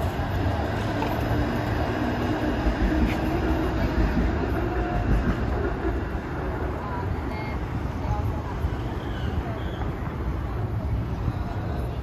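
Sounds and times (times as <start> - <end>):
faint voices: 0.0 - 12.0
low city rumble: 0.0 - 12.0.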